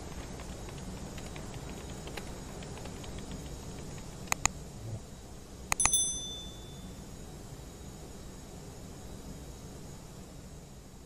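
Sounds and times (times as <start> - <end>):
high bell-like ding: 5.8 - 7.0.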